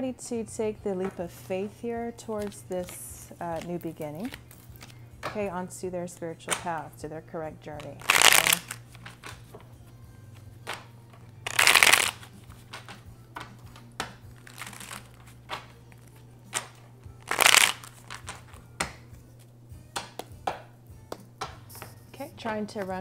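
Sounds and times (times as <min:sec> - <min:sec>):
cards being shuffled: 0:02.3 - 0:05.0, 0:07.8 - 0:09.7, 0:10.4 - 0:19.5
cards tapping and sliding: 0:07.8 - 0:09.7, 0:10.6 - 0:19.1.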